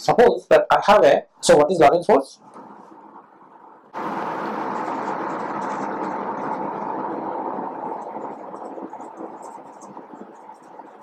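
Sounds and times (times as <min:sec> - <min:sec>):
steady rushing noise: 0:02.5 - 0:11.0.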